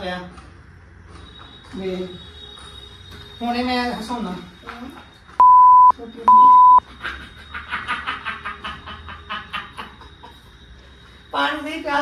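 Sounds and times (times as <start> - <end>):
censor bleep tone: 5.4 - 6.8.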